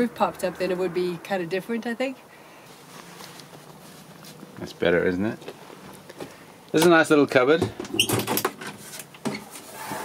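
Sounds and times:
scraping rustle: 2.7 - 4.5
light handling noises: 2.8 - 4.7.

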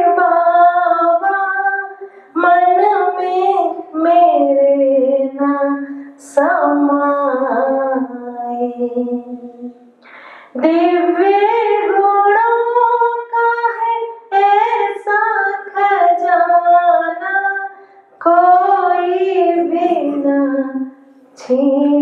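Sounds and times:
woman singing unaccompanied: 0.0 - 22.0.

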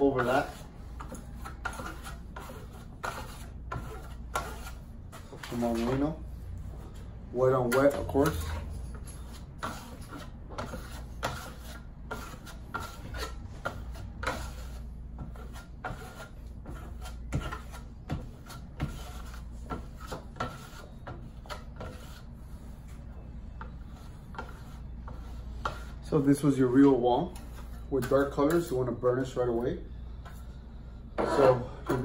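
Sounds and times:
trowel scraping wet plaster: 0.0 - 6.1, 7.6 - 22.3.

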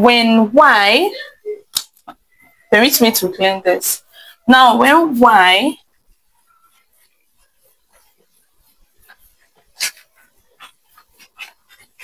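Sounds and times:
cloth wiping a whiteboard: 4.6 - 12.0.

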